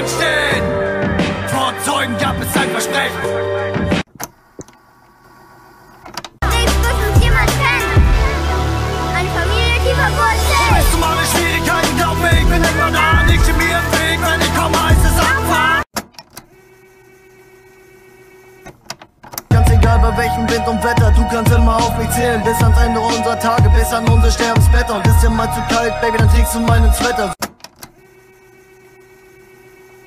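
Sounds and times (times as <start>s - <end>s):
hip-hop beat with deep bass: 0.0s - 4.0s, 6.4s - 15.9s, 19.5s - 27.4s
music: 0.0s - 4.1s, 6.4s - 15.9s, 19.5s - 27.4s.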